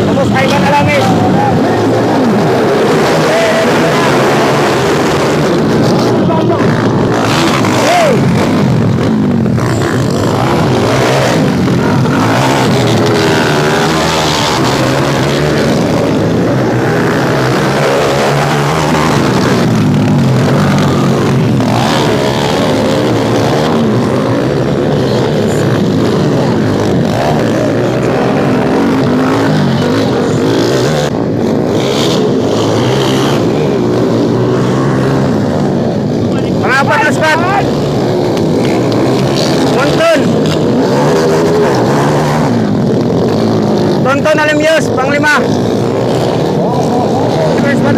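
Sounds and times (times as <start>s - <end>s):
dirt bike engines revving: 0.0s - 47.9s
crowd chatter: 46.4s - 47.9s.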